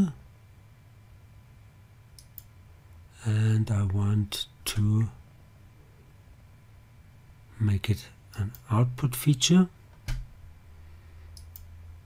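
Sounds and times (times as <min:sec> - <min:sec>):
faint low room hum: 0:00.0 - 0:12.0
computer mouse clicks: 0:02.2 - 0:02.5, 0:11.3 - 0:11.7.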